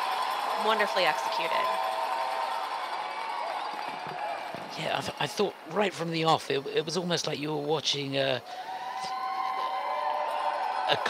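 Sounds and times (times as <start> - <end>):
crowd applauding and cheering: 0.0 - 11.0
long held whoops: 8.6 - 11.0.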